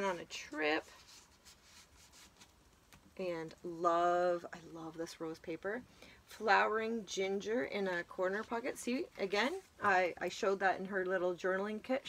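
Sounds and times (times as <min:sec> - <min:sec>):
paper pages rustling: 0:00.0 - 0:03.2.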